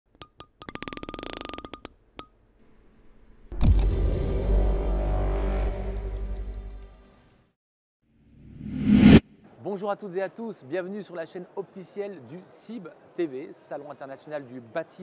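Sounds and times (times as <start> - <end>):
loud impact with deep boom: 3.5 - 6.0.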